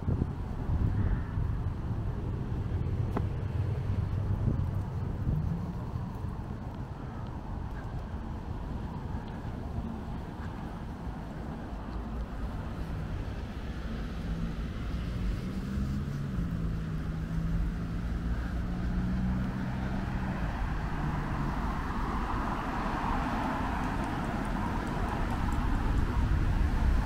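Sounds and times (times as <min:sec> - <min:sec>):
tyre noise of passing cars: 0:00.0 - 0:27.0
vehicle engine humming: 0:00.0 - 0:27.0.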